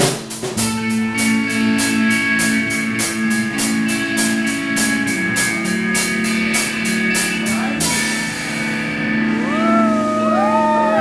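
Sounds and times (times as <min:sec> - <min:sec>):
electric guitar chord ringing: 0:00.6 - 0:11.0
audience whooping: 0:09.3 - 0:11.0.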